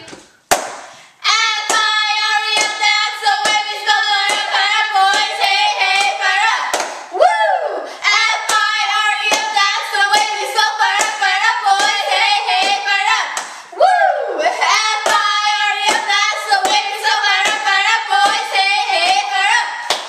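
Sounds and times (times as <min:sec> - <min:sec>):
sharp hand claps: 0:00.5 - 0:00.9, 0:06.7 - 0:07.1
girls chanting a cheer: 0:01.2 - 0:20.0.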